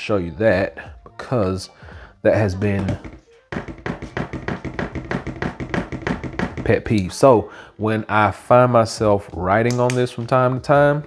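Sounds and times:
phone tapping on wooden desk: 2.8s - 6.7s.

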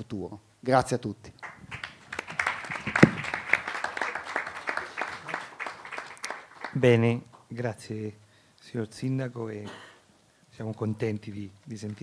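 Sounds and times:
audience applauding: 1.4s - 7.2s
microphone bump: 2.8s - 3.3s.

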